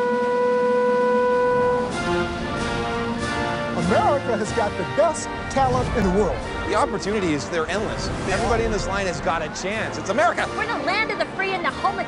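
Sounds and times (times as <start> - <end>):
bugle long note: 0.0 - 3.1.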